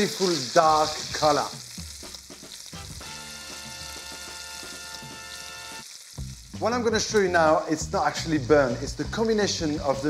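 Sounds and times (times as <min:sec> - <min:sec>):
meat sizzling in hot fat: 0:00.0 - 0:10.0.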